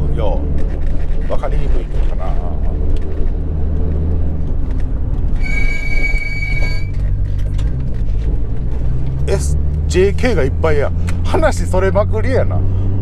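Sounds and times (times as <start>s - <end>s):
muffled car engine drone: 0.0s - 13.0s
high-pitched squeal: 5.4s - 7.2s.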